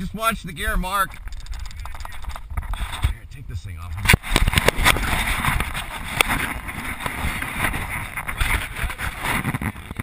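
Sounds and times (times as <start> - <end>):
wind on microphone: 0.6 - 10.0.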